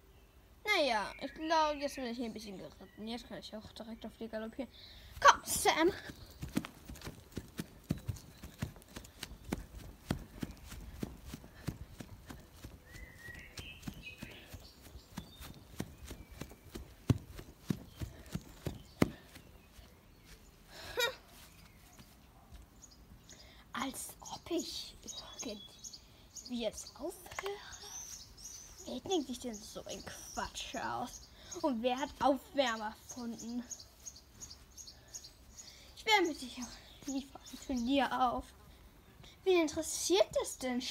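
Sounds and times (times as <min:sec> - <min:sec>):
faint bird chirps: 0:00.0 - 0:38.3
galloping horse hoofbeats: 0:06.0 - 0:19.5.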